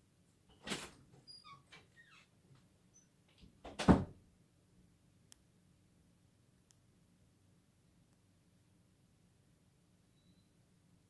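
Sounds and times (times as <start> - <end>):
faint high-pitched squeaks: 1.2 - 3.2, 10.1 - 10.6.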